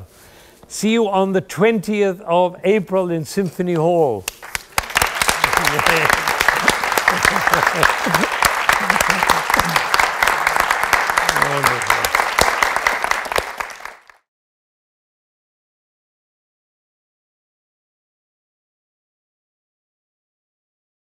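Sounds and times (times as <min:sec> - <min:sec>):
audience applauding: 0:04.3 - 0:14.2
laughter and voices: 0:05.4 - 0:10.0.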